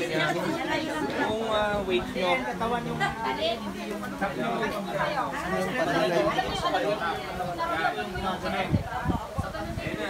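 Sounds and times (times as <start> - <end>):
group of people chattering: 0.0 - 10.0.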